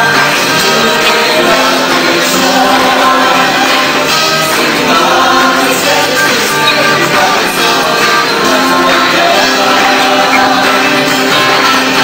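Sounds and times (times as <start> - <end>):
group of singers singing: 0.0 - 12.0
worship band playing: 0.0 - 12.0.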